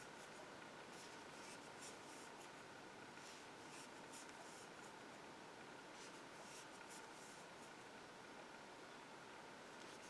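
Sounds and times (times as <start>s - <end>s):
yarn rustling on crochet hook: 0.0s - 5.0s, 5.9s - 7.9s.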